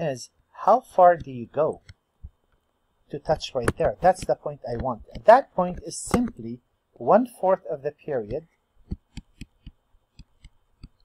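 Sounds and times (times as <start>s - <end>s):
stylus tapping on tablet screen: 0.9s - 6.5s, 8.2s - 11.0s.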